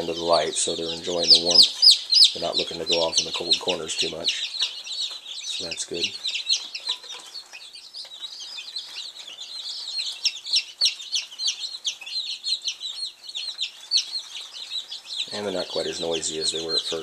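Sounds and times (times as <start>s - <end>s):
chicks peeping: 0.0s - 17.0s.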